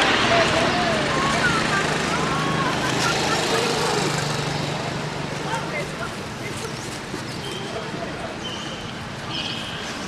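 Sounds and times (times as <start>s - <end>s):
steady noisy rush: 0.0s - 6.4s.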